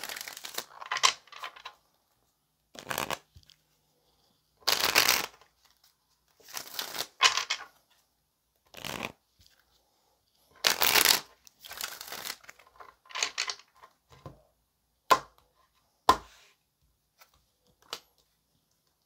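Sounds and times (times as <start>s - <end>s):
cards being shuffled: 0.0s - 1.7s, 2.7s - 3.6s, 4.6s - 7.8s, 8.7s - 9.6s, 10.6s - 13.8s.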